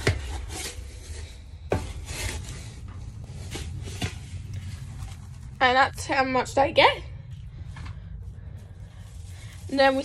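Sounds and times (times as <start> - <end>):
dry chaff rustling: 0.7 - 6.6, 7.3 - 10.0
steady low rumble: 0.8 - 10.0.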